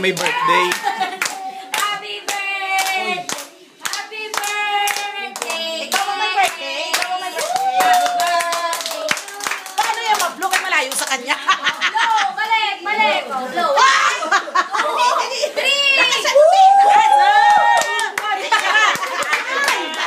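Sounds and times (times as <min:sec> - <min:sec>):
group singing birthday song: 0:00.0 - 0:16.2, 0:18.0 - 0:20.0
hands clapping in time: 0:00.1 - 0:06.1.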